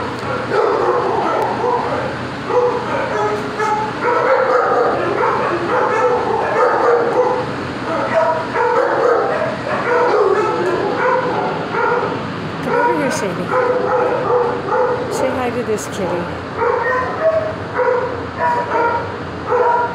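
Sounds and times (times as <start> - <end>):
dog whining and yipping: 2.5 - 7.4, 16.6 - 19.9.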